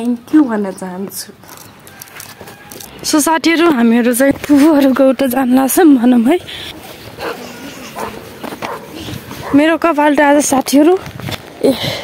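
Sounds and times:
dog barking: 7.2 - 9.7.

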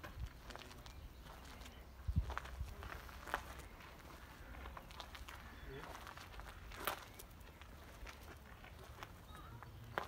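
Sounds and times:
footsteps on outdoor path: 0.0 - 10.0.

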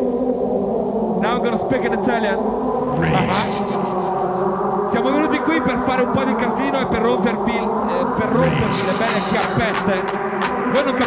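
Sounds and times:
synthesizer drone: 2.7 - 10.5
person speaking into a microphone: 2.9 - 4.3, 5.0 - 10.0.

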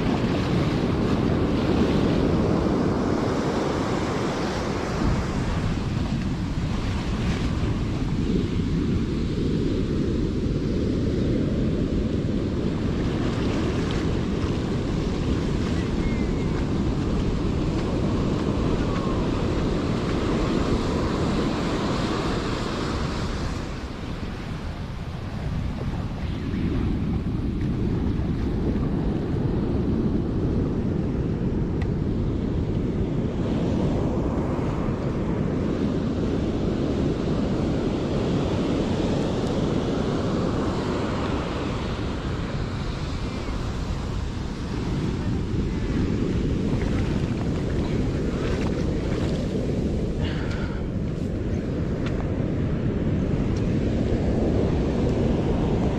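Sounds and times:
ocean surf breaking: 0.0 - 55.9
wind rumbling on microphone: 0.0 - 55.9.

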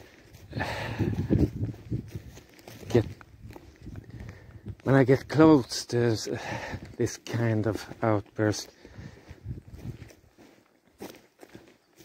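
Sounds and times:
footsteps on forest floor: 0.0 - 12.0.

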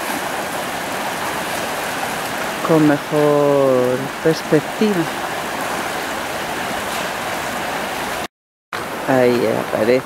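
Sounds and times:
river water rushing over stones: 0.0 - 10.0.

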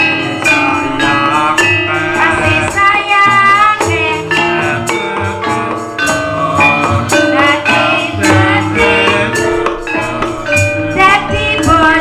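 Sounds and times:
hand drums: 0.0 - 12.0
metallophone keys struck with mallets: 0.0 - 12.0
woman singing: 0.7 - 4.9, 7.1 - 12.0.

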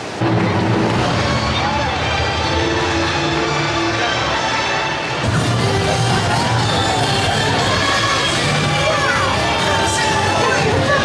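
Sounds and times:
crowd cheering: 0.0 - 11.0
parade music: 0.2 - 11.0
children shouting: 0.9 - 11.0.

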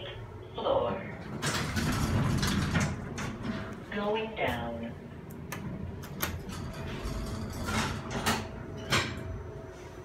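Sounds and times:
elevator doors sliding open: 1.0 - 4.1, 5.3 - 9.5.

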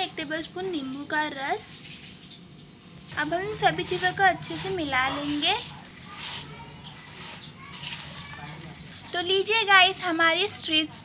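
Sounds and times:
puffed rice rustling in steel bowl: 3.1 - 8.9.

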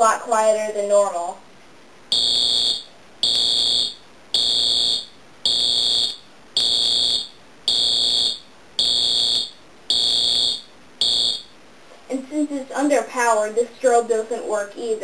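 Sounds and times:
fire alarm horn pulses: 2.1 - 11.5.

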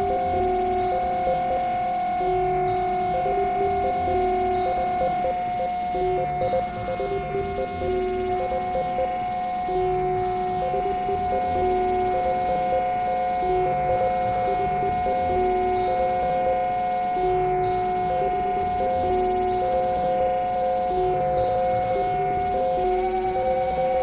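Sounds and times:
hi-hat-like ticks: 0.0 - 24.0
high synth drone: 0.0 - 24.0
two-note synth figure: 2.2 - 24.0.

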